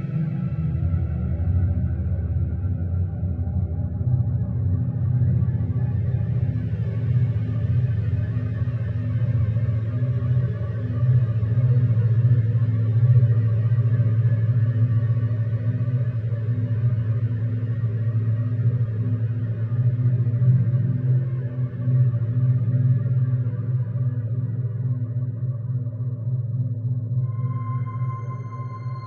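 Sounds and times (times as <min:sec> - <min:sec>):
ambient synthesizer drone: 0:18.1 - 0:29.0.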